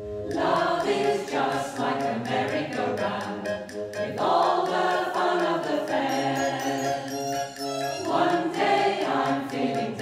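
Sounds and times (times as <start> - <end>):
mixed choir singing: 0.2 - 10.0.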